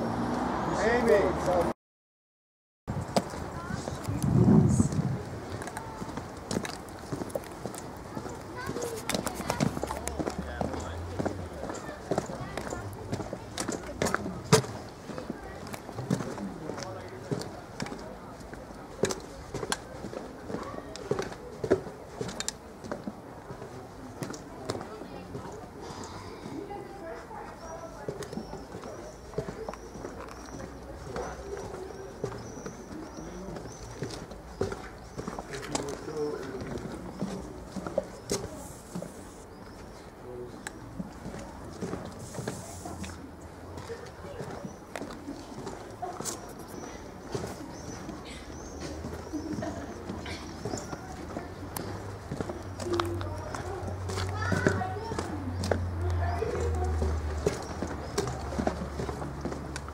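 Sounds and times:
footsteps on stone paving: 2.9 - 59.9
indistinct voices: 3.1 - 59.9.

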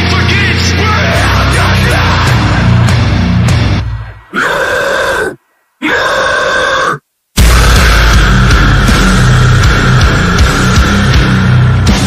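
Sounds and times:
guttural vocal growls: 4.3 - 9.1.

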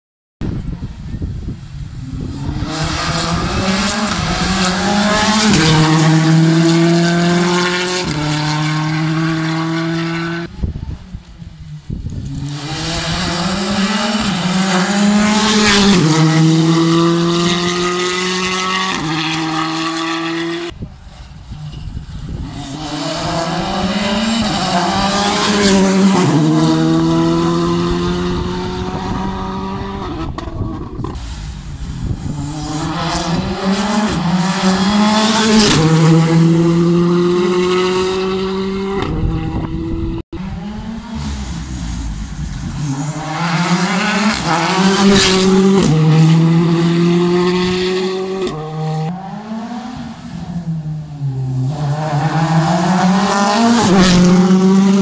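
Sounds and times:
rally car engine revving: 1.9 - 10.7, 11.5 - 55.0.

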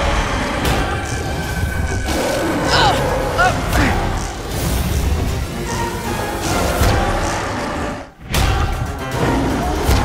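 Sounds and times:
dramatic music: 0.0 - 10.0
large creature roaring: 2.1 - 4.4.

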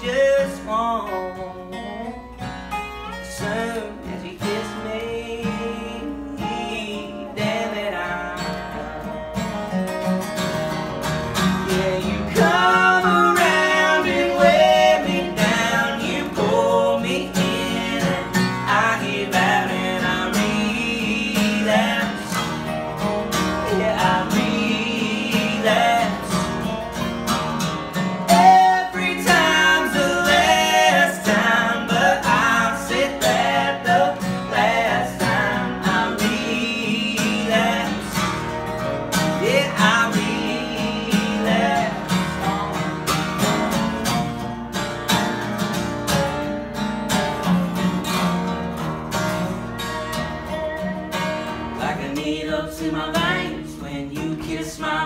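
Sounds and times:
acoustic guitars playing country: 0.0 - 55.0
bending guitar melody line: 0.0 - 55.0.

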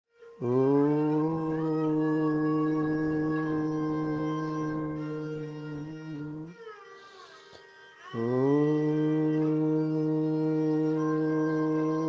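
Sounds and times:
sustained musical tone: 0.4 - 7.5.

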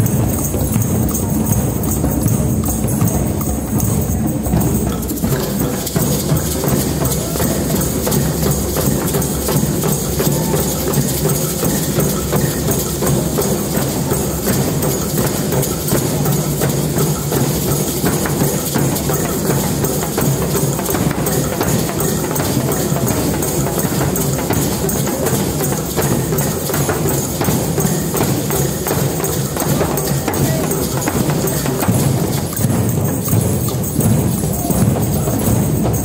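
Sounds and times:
hand drums playing: 0.0 - 36.0
small percussion rattle: 0.0 - 36.0.

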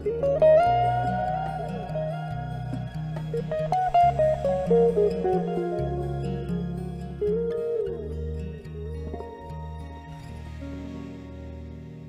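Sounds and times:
low bass notes: 0.0 - 10.0
electric guitar melody: 0.0 - 12.0.

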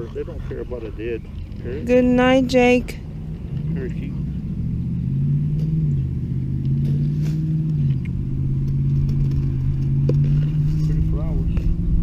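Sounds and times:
engine running with low hum: 0.0 - 12.0.

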